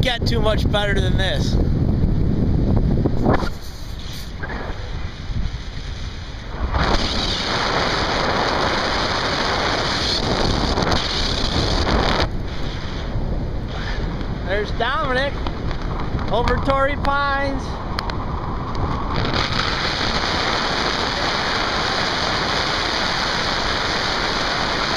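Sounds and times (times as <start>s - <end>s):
wind buffeting microphone: 0.0s - 24.9s
hissing rush of air: 3.0s - 14.8s, 17.6s - 24.9s.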